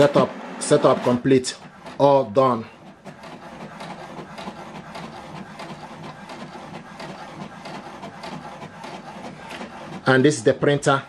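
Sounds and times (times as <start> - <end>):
inkjet printer printing: 0.0 - 11.0
rapid printer clicks: 0.0 - 11.0.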